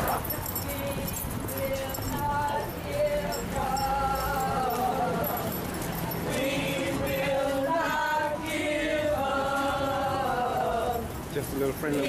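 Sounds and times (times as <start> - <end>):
group chanting in unison: 6.3 - 11.2.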